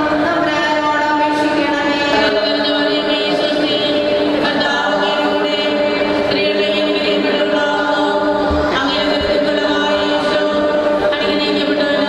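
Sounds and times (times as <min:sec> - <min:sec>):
choir singing: 0:01.7 - 0:12.0.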